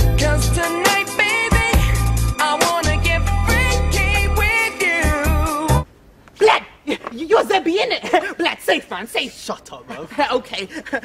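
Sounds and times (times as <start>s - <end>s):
man's voice swinging in pitch: 6.4s - 11.0s.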